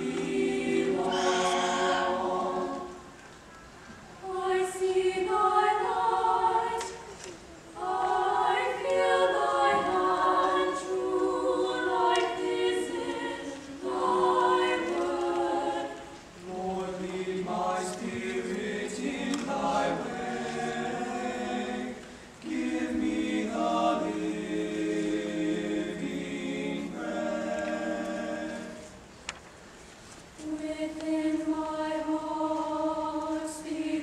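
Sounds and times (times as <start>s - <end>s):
choir singing in harmony: 0.0s - 3.4s, 4.2s - 29.1s, 30.4s - 34.0s.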